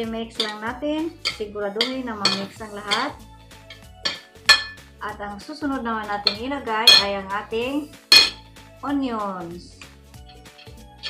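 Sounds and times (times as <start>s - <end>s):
cutlery scraping a ceramic plate: 1.2s - 4.8s.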